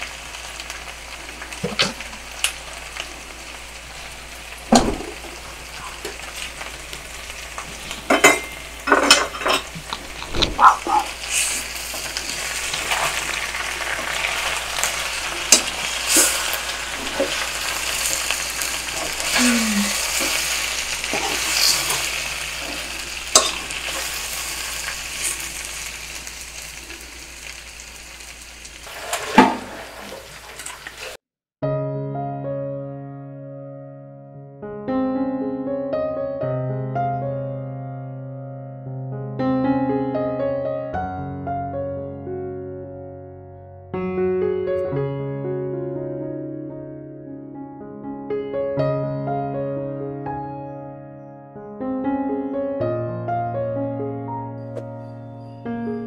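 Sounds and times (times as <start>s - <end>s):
chicken sizzling in a wok: 0.0s - 31.2s
metal tongs clinking on pan: 8.1s - 9.7s, 23.3s - 24.1s.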